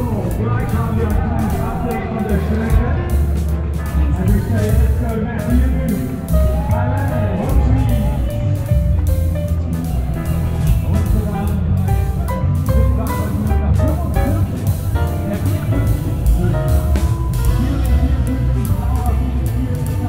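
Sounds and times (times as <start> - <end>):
music with guitar and drums: 0.0 - 20.0.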